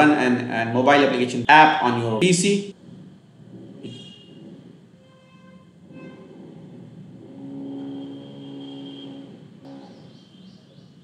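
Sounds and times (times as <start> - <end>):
steady pitched tones: 0.0 - 11.0.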